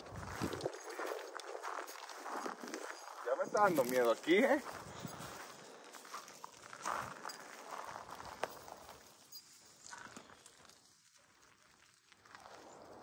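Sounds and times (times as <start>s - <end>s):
footsteps on pine needles: 0.0s - 13.0s.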